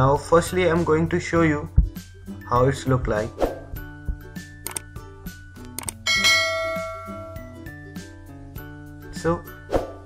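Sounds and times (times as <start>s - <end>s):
background music: 0.0s - 10.0s
bell-chime ding: 6.0s - 7.8s.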